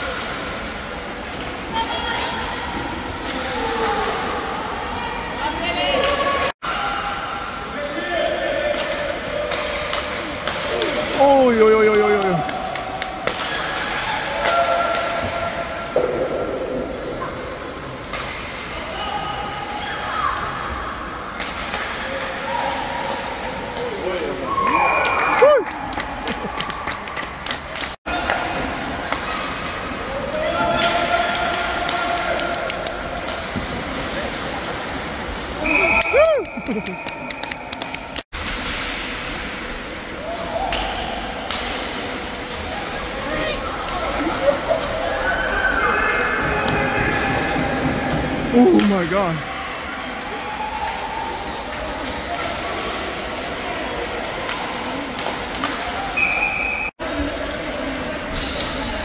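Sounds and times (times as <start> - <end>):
sticks and puck clacking: 8.7 - 11.2, 30.7 - 34.5.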